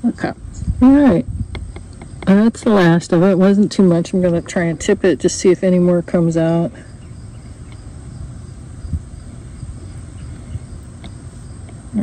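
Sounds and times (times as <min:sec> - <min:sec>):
crickets chirping: 0:00.0 - 0:12.0
low steady rumble: 0:00.0 - 0:12.0.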